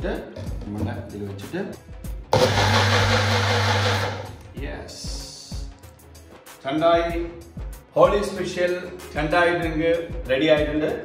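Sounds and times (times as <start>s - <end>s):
blender motor whirring: 2.4s - 4.4s.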